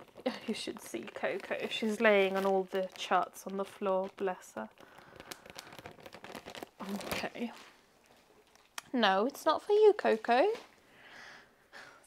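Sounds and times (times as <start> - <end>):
packaging rustling and crinkling: 0.0 - 8.8.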